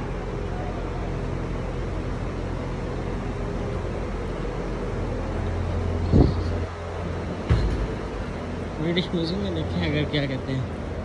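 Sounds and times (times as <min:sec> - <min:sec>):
street noise rumble: 0:00.0 - 0:11.0.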